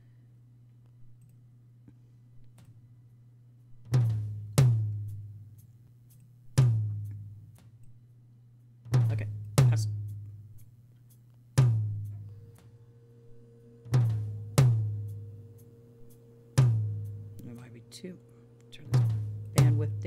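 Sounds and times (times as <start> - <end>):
tom drum hits: 13.8 - 15.3, 16.6 - 17.7, 18.8 - 20.0.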